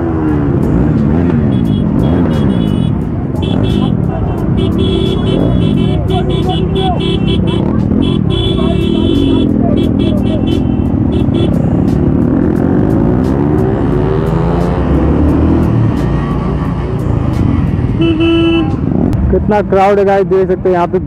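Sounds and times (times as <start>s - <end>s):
engine revving: 0.0s - 19.5s
motorcycle engines in traffic: 0.0s - 21.0s
vehicle horn: 1.5s - 11.8s, 18.0s - 18.8s.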